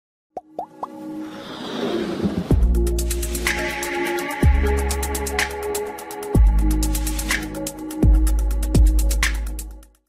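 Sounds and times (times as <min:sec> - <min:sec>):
music: 0:00.4 - 0:10.0.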